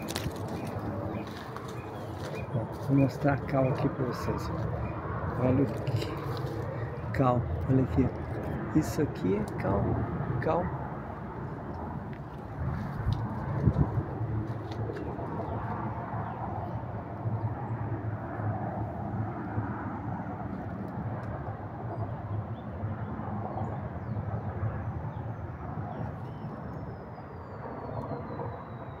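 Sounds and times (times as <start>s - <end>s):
wind on microphone: 0.0s - 27.1s.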